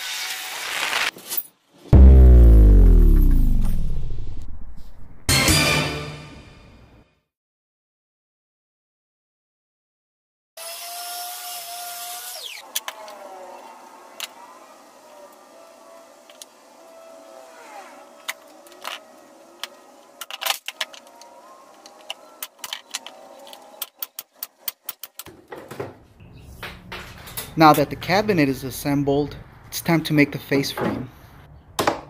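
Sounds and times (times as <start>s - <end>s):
power tool motor whine: 10.6s - 20.2s.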